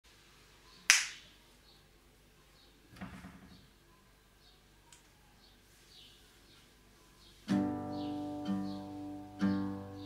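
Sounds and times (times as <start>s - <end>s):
finger snap: 0.9s - 1.3s.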